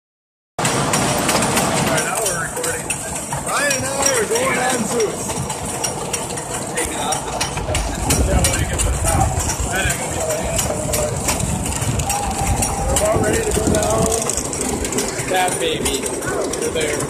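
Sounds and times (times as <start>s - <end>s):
roller coaster lift chain clacking: 0.6s - 17.0s
roller coaster train rattling: 0.6s - 17.0s.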